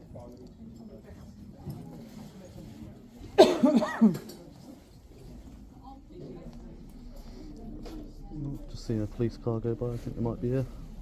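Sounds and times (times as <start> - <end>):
person coughing: 3.4 - 4.3.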